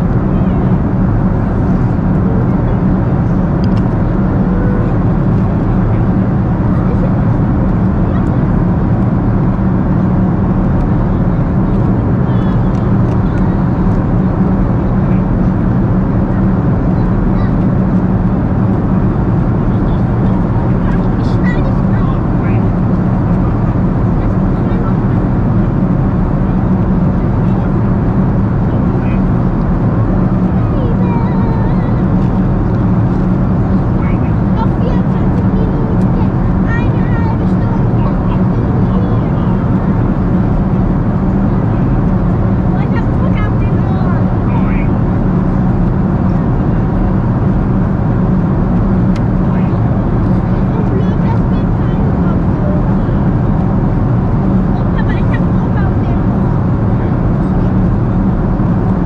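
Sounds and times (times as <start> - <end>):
airplane cabin engine drone: 0.0 - 59.0
faint indistinct voices: 0.0 - 59.0.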